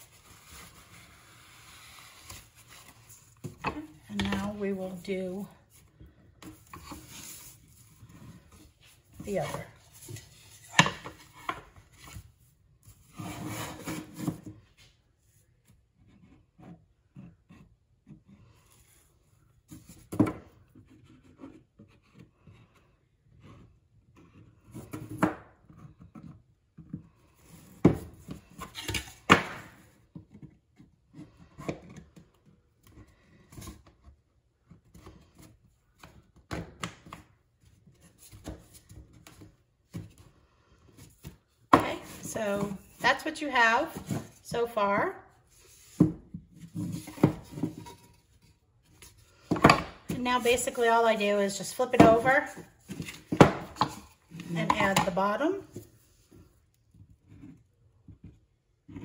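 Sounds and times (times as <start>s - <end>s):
wood rubbing and scraping on wood: 0.0s - 12.2s.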